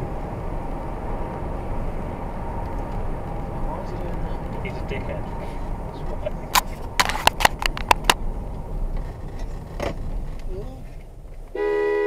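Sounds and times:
car road and engine noise: 0.0s - 12.0s.

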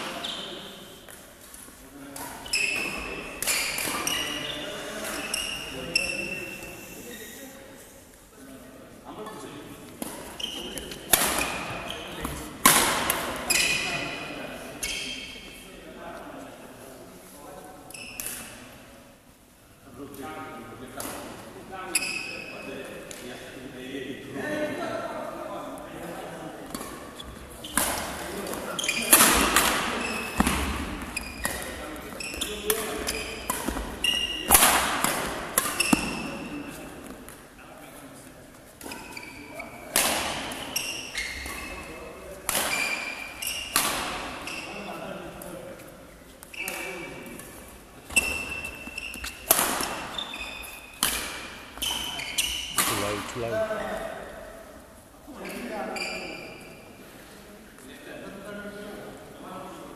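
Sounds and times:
rackets striking shuttlecock: 32.6s - 36.4s, 42.4s - 44.4s, 48.1s - 50.1s, 50.9s - 53.0s.

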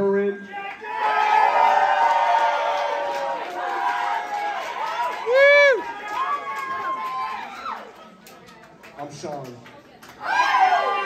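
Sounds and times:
loud whoop: 0.8s - 7.9s
audience cheering and whooping: 0.8s - 8.0s, 10.2s - 11.0s.

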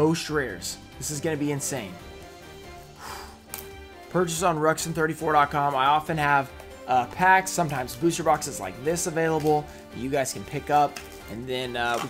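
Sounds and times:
quiet background music: 0.0s - 12.0s
plastic wrap rustling: 10.8s - 12.0s.

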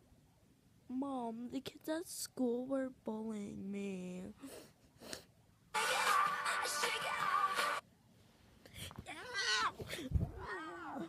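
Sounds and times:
meow-like whining cries: 9.2s - 11.0s.

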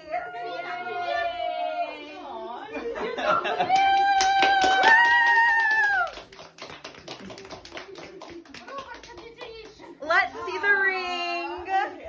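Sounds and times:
small group clapping: 3.5s - 10.4s.

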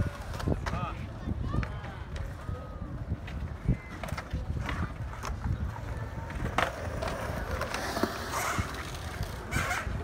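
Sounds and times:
skateboard wheels rolling on concrete: 0.0s - 10.0s
skateboards clacking on concrete: 0.0s - 10.0s.

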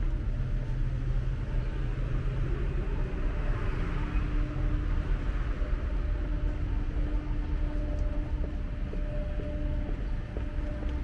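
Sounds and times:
cars passing: 0.0s - 11.0s.

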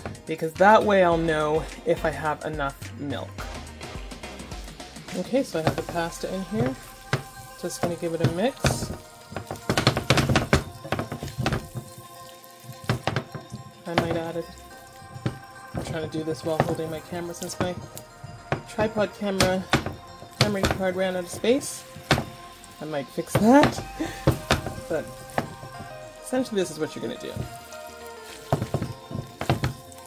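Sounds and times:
soft background music: 0.0s - 30.0s
tongs knocking against skillet: 5.6s - 22.5s, 23.3s - 26.0s, 26.9s - 30.0s.

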